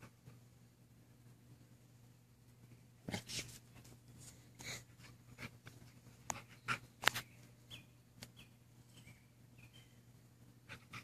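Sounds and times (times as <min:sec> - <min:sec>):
soft breathy puffs: 0:03.1 - 0:06.9.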